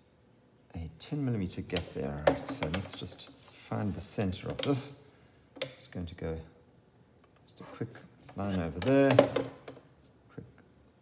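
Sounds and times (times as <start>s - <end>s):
man speaking: 0.7s - 5.0s, 5.6s - 6.6s, 7.4s - 9.5s.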